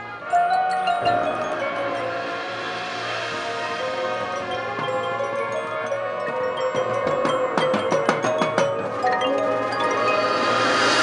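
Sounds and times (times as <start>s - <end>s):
marching band playing: 0.0s - 11.0s
mallet percussion and drums striking: 0.3s - 11.0s.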